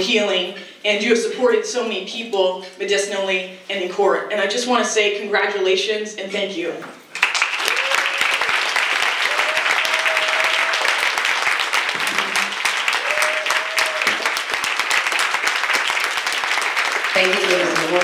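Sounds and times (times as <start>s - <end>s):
audience applauding: 7.1s - 18.0s.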